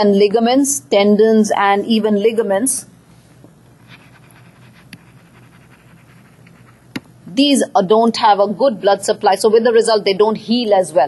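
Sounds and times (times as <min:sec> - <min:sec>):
stylus scratching on tablet: 0:03.8 - 0:07.0.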